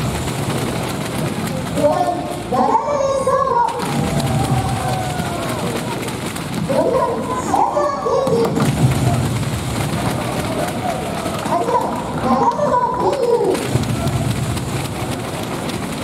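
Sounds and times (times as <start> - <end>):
crowd chatter in an arena: 0.0 - 16.0
higher voices in crowd: 1.6 - 15.5.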